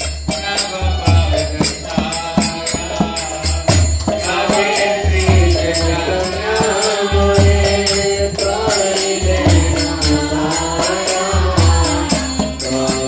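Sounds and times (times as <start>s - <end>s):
hand cymbals clashing: 0.0s - 13.0s
person singing devotional melody: 0.0s - 13.0s.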